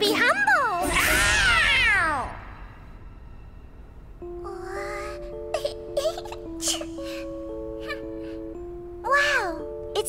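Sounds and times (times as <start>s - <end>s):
slow melody of held notes: 3.1s - 10.0s.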